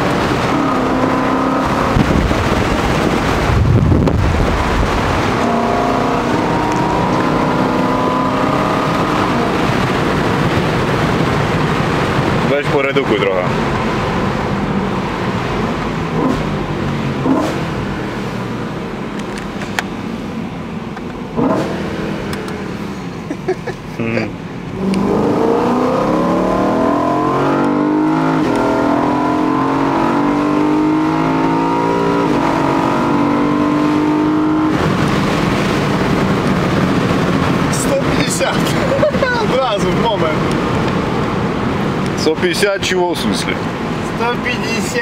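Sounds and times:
rushing wind noise: 0.0 - 19.6, 24.7 - 42.2
car engine accelerating: 0.0 - 45.0.

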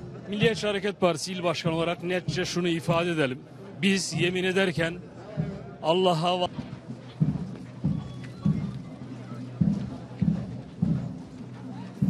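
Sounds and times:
rhythmic low thuds: 0.0 - 12.0.

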